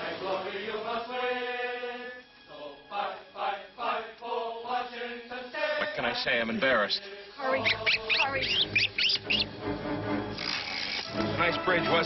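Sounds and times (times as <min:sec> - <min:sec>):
film music with sustained chords: 0:00.0 - 0:12.0
faint hiss: 0:04.2 - 0:11.5
high chirping sweeps: 0:07.2 - 0:09.6.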